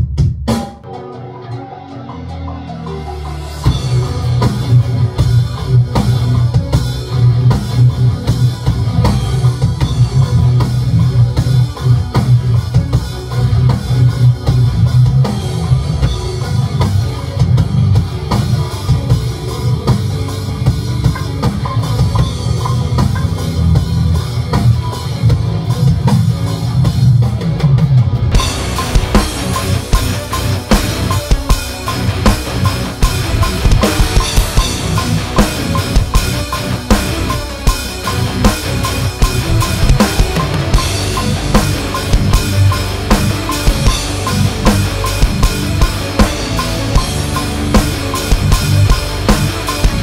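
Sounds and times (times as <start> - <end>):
drum kit playing: 0.0 - 1.2, 2.5 - 50.0
electric guitar: 0.8 - 50.0.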